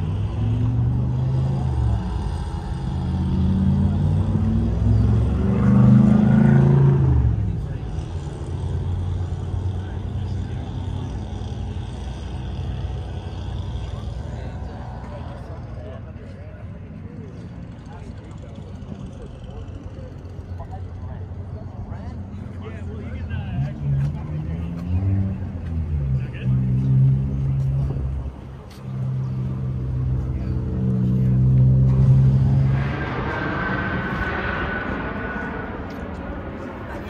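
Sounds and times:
people talking: 13.8 - 37.0
low-pitched hum: 29.5 - 37.0
rushing noise with whine: 31.9 - 37.0.

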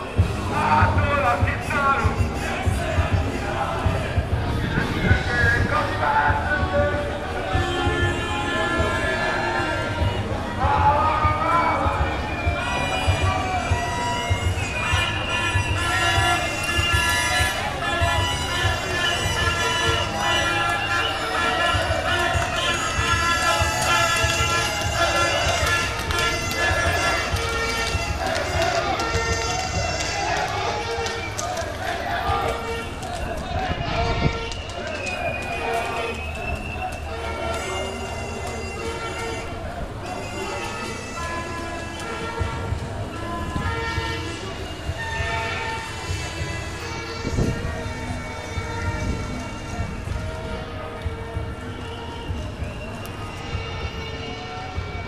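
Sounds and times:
background music: 0.0 - 55.0
crowd talking and calling: 0.0 - 55.0
sustained horn-like tones: 0.0 - 55.0.

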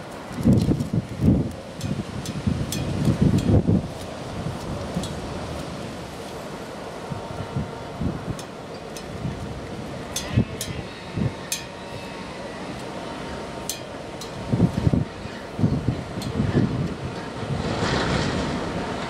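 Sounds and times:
diesel locomotive drone: 0.0 - 19.0
wind buffeting microphone: 0.0 - 19.0.

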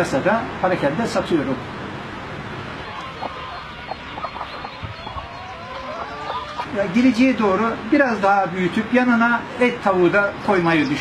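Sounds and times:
hens clucking: 2.7 - 7.7.

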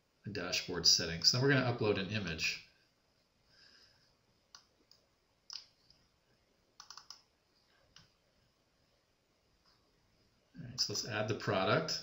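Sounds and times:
computer mouse clicks: 4.5 - 6.0, 6.8 - 7.3.

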